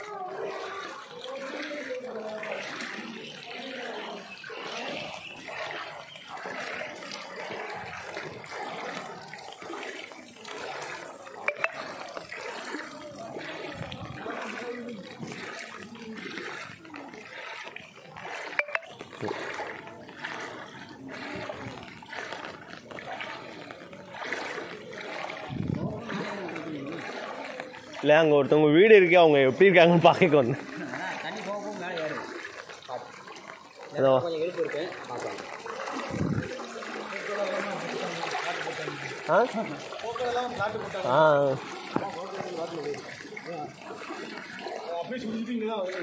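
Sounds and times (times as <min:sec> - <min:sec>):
floodwater sloshing and splashing: 0:00.0 - 0:46.0.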